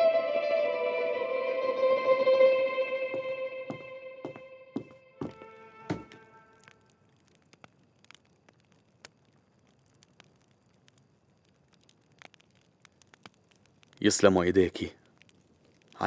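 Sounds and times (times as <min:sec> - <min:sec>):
faint clicks: 0:06.6 - 0:16.0.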